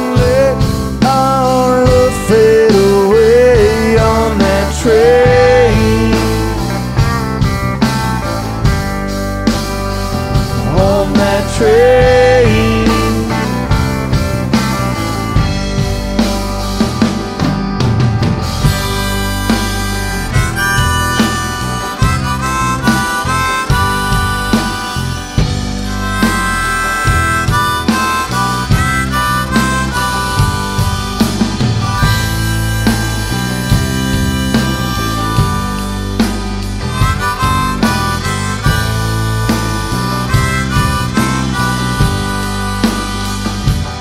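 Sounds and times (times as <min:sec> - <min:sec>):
bass guitar: 0:00.0 - 0:44.0
electric guitars: 0:00.0 - 0:44.0
harmonica bending notes: 0:00.0 - 0:44.0
rock band playing: 0:00.0 - 0:44.0
steady drum beat: 0:00.0 - 0:44.0.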